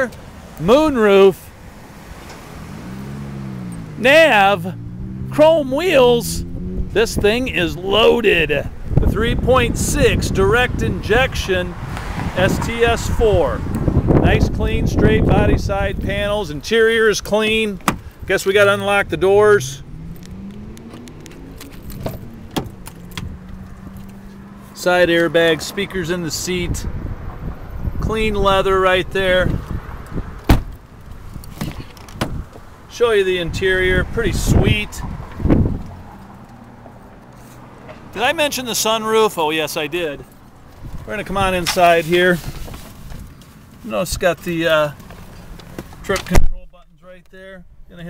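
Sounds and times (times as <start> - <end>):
vehicle engine drone: 0.0 - 43.6
car door opening: 17.7 - 18.2, 20.1 - 24.2, 30.4 - 30.8, 31.4 - 32.6
car door locks clicking: 17.8 - 18.1, 20.2 - 23.3, 30.4 - 30.8, 31.5 - 32.4.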